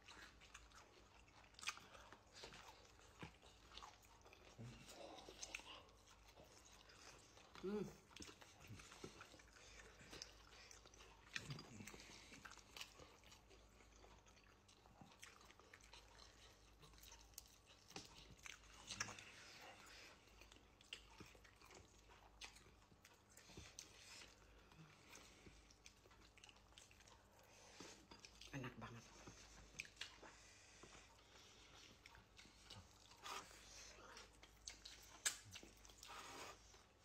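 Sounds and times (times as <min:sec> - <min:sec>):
chewing and mouth smacks: 0:00.0 - 0:37.0.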